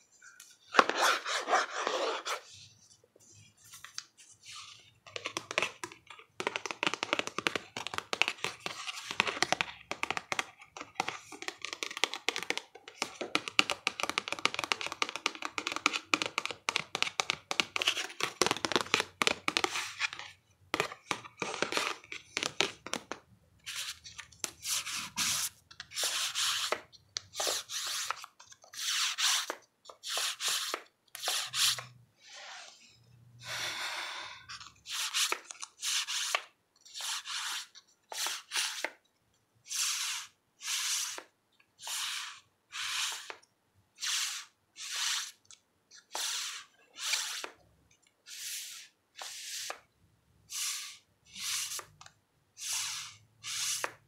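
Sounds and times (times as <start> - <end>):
fingers flicking through cards: 5.1 - 20.1.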